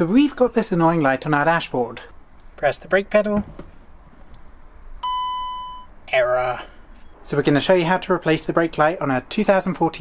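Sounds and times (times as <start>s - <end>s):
warning chime beep: 5.0s - 5.9s.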